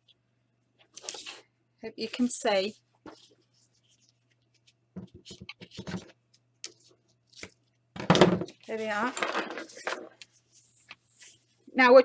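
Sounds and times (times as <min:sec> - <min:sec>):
tape and card rustling: 0:00.8 - 0:01.4, 0:08.5 - 0:11.5.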